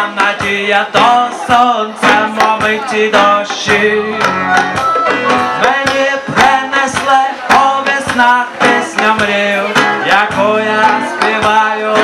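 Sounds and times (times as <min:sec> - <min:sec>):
acoustic guitar: 0:00.0 - 0:12.0
hand drums: 0:00.0 - 0:12.0
person singing: 0:00.0 - 0:12.0.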